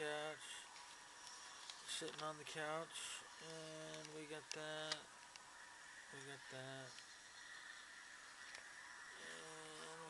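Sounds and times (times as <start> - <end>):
faint room hiss: 0.0 - 10.0
thin high whine: 0.0 - 10.0
man humming: 3.4 - 4.1, 9.2 - 10.0.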